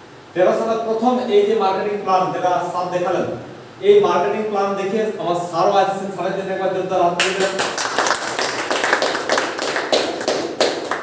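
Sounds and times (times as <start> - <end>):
people clapping: 7.2 - 11.0.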